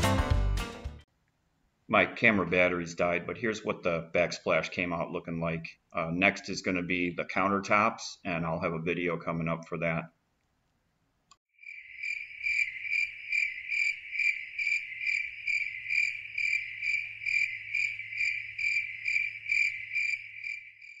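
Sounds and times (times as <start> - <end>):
insect chirping trill: 11.6 - 21.0.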